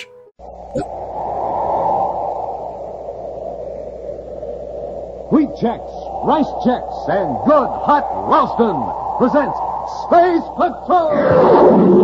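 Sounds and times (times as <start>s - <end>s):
recording hiss and hum: 0.0s - 12.0s.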